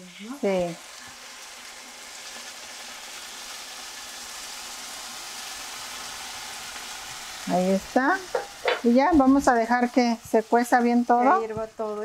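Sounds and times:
broth pouring into pot: 0.0 - 9.1
sizzling in hot pot: 0.0 - 12.0.

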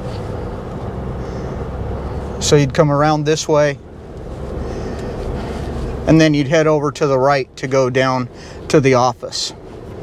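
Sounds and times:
engine and road noise in car: 0.0 - 10.0.

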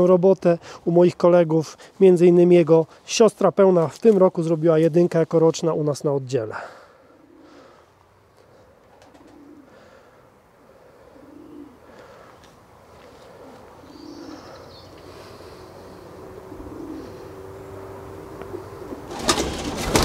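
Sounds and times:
pigeons cooing: 6.6 - 20.0.

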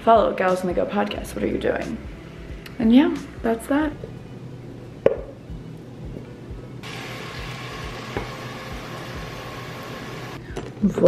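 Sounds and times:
light knock on bowl: 5.0 - 5.3.

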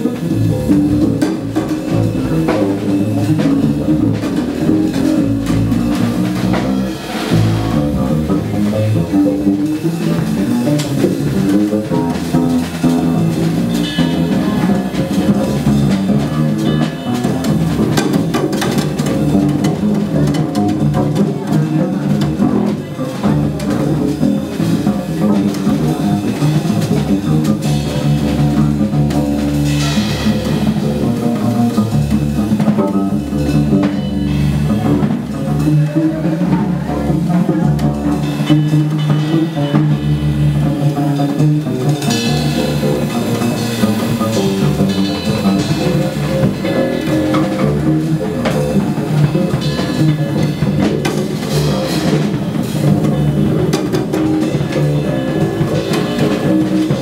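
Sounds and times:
cymbals: 0.0 - 57.0
drum kit playing: 0.0 - 57.0
plucked double bass walking line: 0.0 - 57.0.

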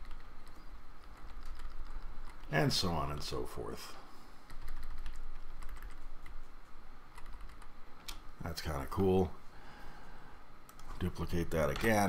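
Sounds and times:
keyboard keys clicking: 0.0 - 2.5, 4.5 - 6.4, 7.2 - 8.2
steady low hum: 0.0 - 12.0.

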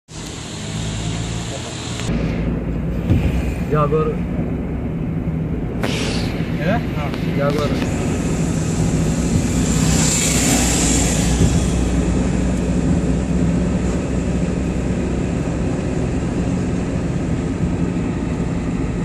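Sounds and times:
rushing hiss: 0.1 - 4.2, 5.8 - 13.8
car engine and tyre rumble: 0.1 - 19.0.

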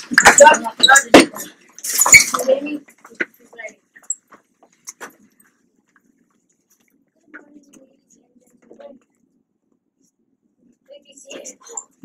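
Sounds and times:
faint room murmur: 0.0 - 12.0.

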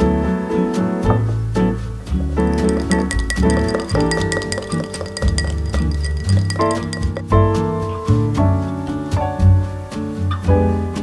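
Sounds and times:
spoon clinking against glass: 2.6 - 7.4.

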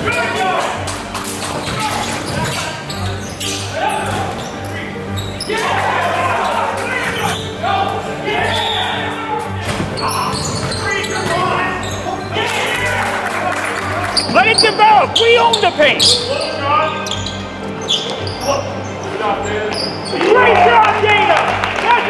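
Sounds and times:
players calling out: 0.0 - 22.0.

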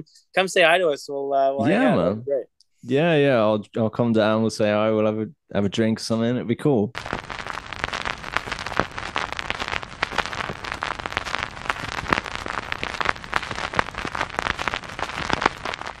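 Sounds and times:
crackling pops and clicks: 7.0 - 16.0
steady hiss: 7.0 - 16.0.

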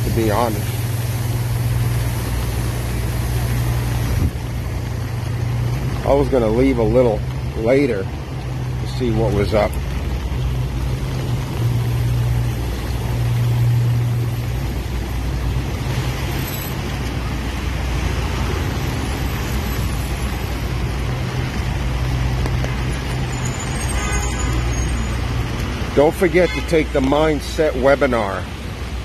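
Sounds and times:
tyres hissing on wet road: 0.0 - 29.0
vehicle engines humming: 0.0 - 29.0.

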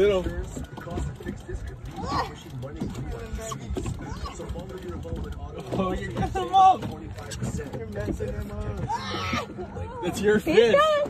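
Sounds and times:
wind buffeting microphone: 0.0 - 11.0
group shouting and laughing: 8.9 - 10.1.

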